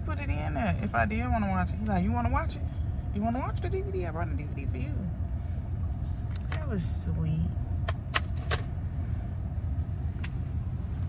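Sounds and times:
car cabin rumble: 0:05.8 - 0:11.0.

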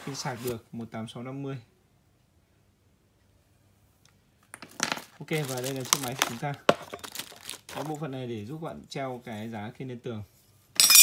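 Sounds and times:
clicks and rustling of items handled: 0:04.5 - 0:08.1.

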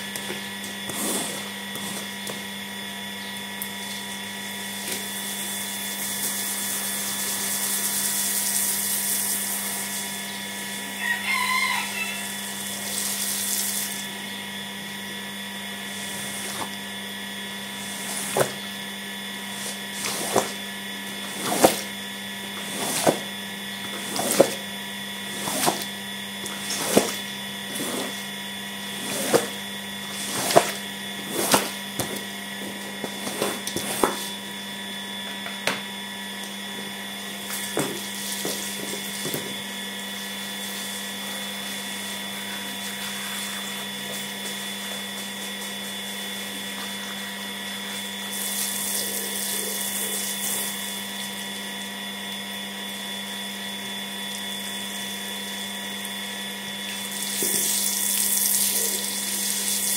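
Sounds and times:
motor hum with high whine: 0:00.0 - 0:59.9.

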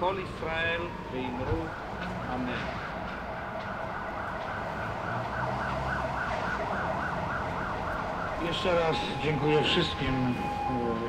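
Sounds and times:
emergency vehicle siren: 0:00.0 - 0:11.0
street traffic: 0:00.0 - 0:11.0.

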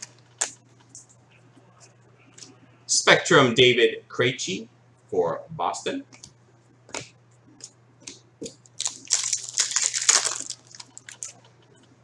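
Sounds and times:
wrapper tearing and crinkling: 0:08.8 - 0:11.4.

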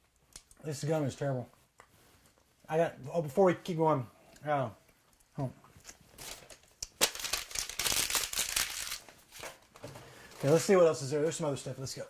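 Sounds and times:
paper rustling and crinkling: 0:06.1 - 0:10.9.

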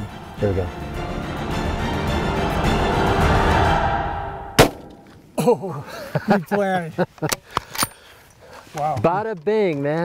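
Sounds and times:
tense background music: 0:00.0 - 0:04.8
rifle shot: 0:04.6 - 0:05.0.

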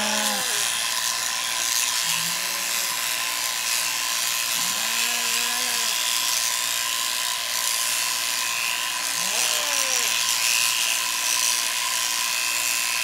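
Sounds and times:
electric shears whining: 0:00.0 - 0:13.0.

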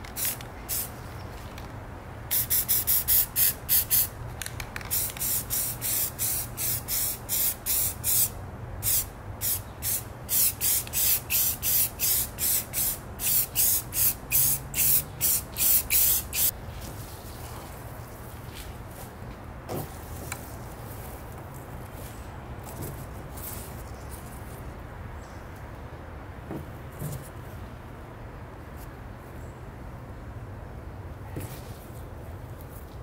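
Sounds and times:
spray paint hissing bursts: 0:00.1 - 0:01.0, 0:02.3 - 0:04.2, 0:04.9 - 0:16.6.

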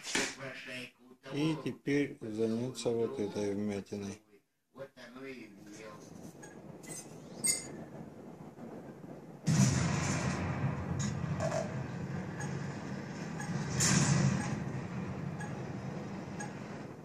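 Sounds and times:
machine rumbling hiss: 0:05.4 - 0:17.0.

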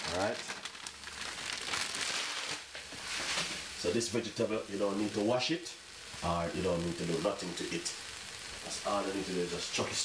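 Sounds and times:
vegetables sizzling in a pan: 0:00.0 - 0:10.0.

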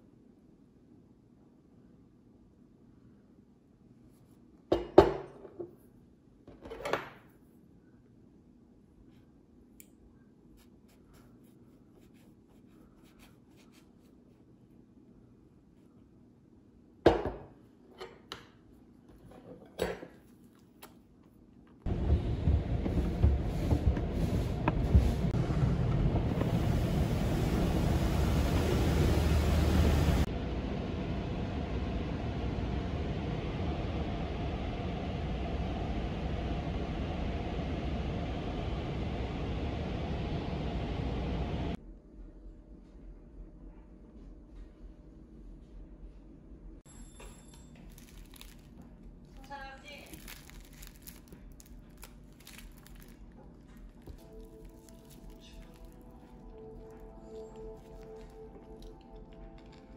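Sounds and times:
car wash rushing: 0:21.9 - 0:41.7
tableware clinking: 0:46.9 - 0:48.0.

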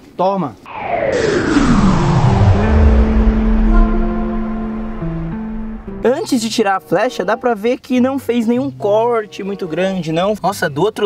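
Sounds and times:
downward pitch sweep: 0:00.7 - 0:06.4
background music with held notes: 0:03.2 - 0:11.0.

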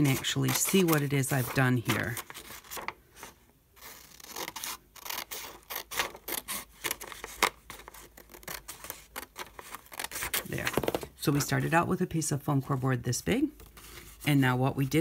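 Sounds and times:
scissors cutting paper: 0:00.0 - 0:02.9, 0:03.8 - 0:10.4.

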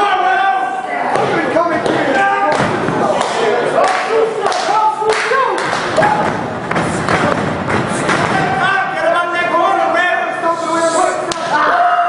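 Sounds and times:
wrestling strikes thudding: 0:01.1 - 0:03.3, 0:05.6 - 0:08.7.

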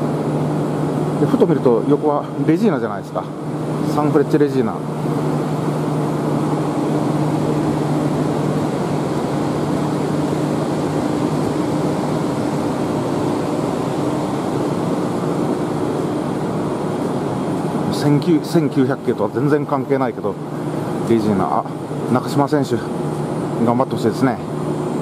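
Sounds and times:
tram equipment humming: 0:00.0 - 0:25.0.

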